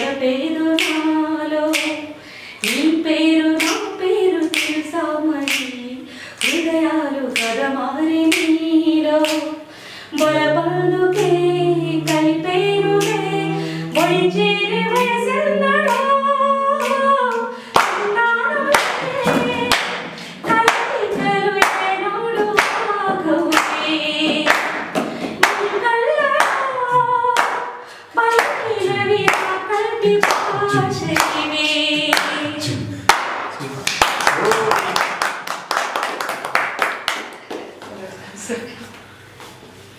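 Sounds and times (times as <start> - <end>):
woman singing: 0.0 - 32.8
other voices singing: 0.0 - 33.7
hands clapping: 0.7 - 1.1, 1.7 - 2.0, 3.6 - 4.8, 5.4 - 5.7, 6.4 - 6.7, 8.3 - 8.5, 9.2 - 9.5, 11.1 - 14.2, 15.8 - 16.2, 17.8 - 25.8, 27.4 - 27.7, 28.3 - 28.7, 29.3 - 29.6, 30.2 - 32.4, 33.1 - 38.0.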